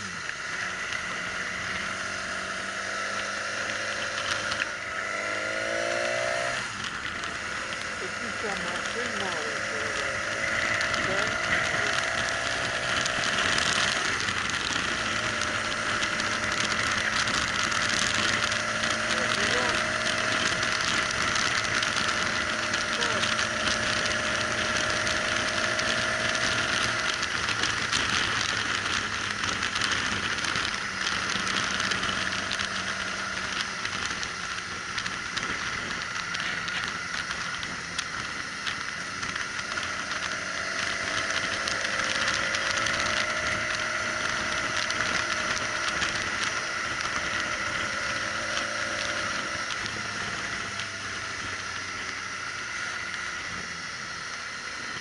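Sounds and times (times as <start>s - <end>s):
faint motorcycle engine: 0.0s - 55.0s
wind and road noise: 0.0s - 55.0s.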